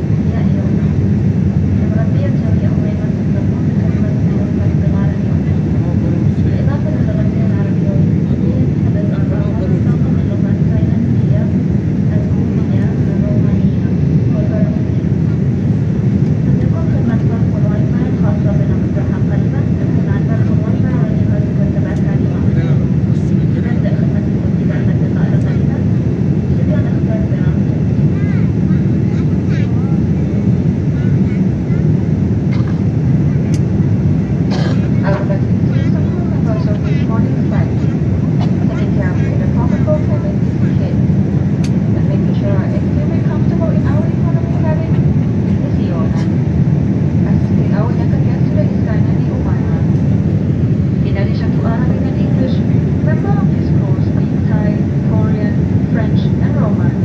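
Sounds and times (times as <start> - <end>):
airliner cabin engine noise: 0.0 - 57.0
passenger voices murmuring: 0.0 - 57.0.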